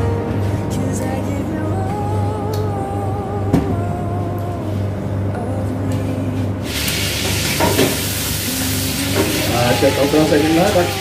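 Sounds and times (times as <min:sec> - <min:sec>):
soft background music: 0:00.0 - 0:07.0, 0:07.6 - 0:11.0.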